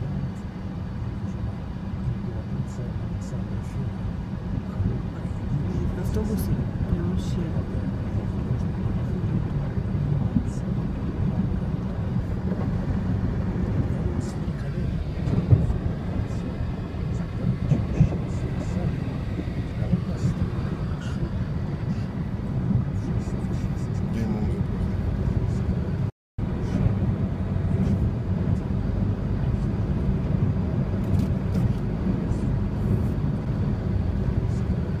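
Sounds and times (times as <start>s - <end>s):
car driving through floodwater: 0.7s - 35.0s.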